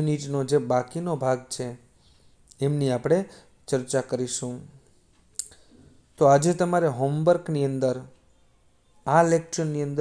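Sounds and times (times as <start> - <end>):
man's voice: 6.2 - 8.2, 9.0 - 10.0.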